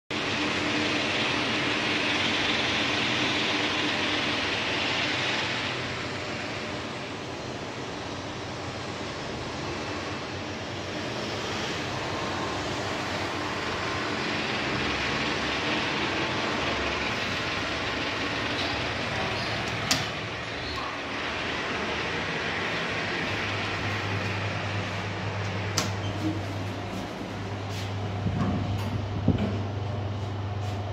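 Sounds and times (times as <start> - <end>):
steady rushing noise: 0.2 - 29.4.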